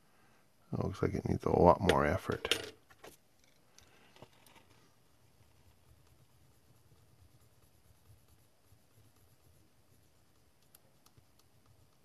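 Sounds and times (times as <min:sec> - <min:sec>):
low room hum: 0:00.0 - 0:12.0
stylus scratching: 0:04.4 - 0:12.0.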